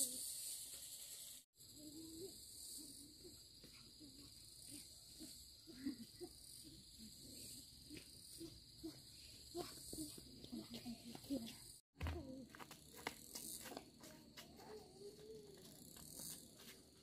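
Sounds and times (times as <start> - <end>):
insects chirping: 0.0 - 11.7, 12.6 - 17.0
footsteps on dirt path: 9.6 - 17.0.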